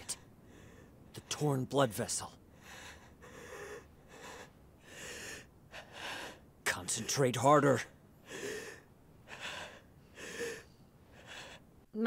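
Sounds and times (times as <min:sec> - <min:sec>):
man breathing heavily: 0:00.0 - 0:01.3, 0:02.4 - 0:07.2, 0:07.9 - 0:11.9.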